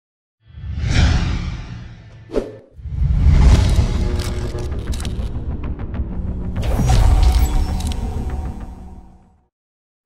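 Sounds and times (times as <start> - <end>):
whoosh: 0.5 - 5.3
low rumble: 0.7 - 6.6.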